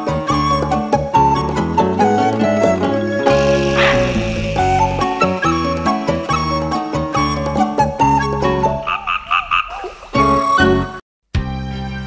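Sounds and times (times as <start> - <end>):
background music: 0.0 - 12.0
croak-like calls: 3.4 - 5.6, 8.8 - 10.1.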